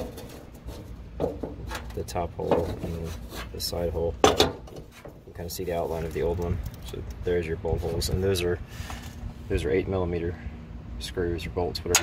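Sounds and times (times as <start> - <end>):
rubbing and handling noise: 0.0 - 9.2.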